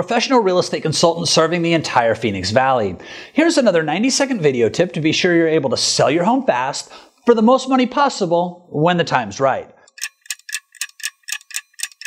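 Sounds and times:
clock ticking: 9.9 - 12.0.

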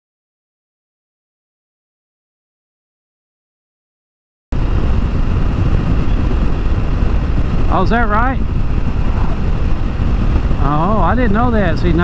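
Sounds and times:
loud rumbling noise with hiss: 4.6 - 12.0.

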